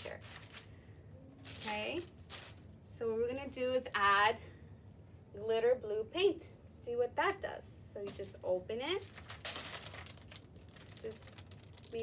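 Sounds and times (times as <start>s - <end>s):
plastic bag crinkling: 0.0s - 0.7s, 1.4s - 2.6s, 8.1s - 12.0s.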